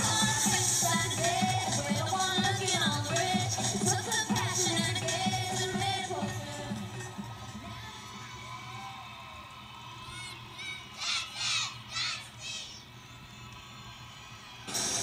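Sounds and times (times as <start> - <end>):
loud music: 0.0 - 8.2, 14.7 - 15.0.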